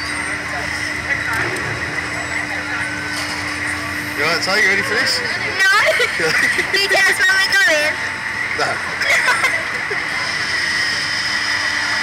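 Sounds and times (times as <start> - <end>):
constant low hum: 0.0 - 12.0
faint indistinct voices: 0.0 - 12.0.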